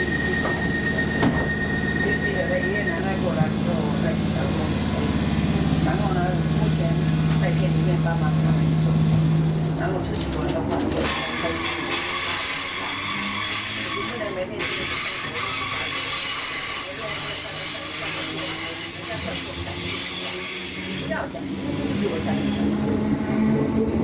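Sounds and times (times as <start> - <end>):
passengers chatting: 0.0 - 12.5, 13.9 - 24.0
train running hum: 0.0 - 24.0.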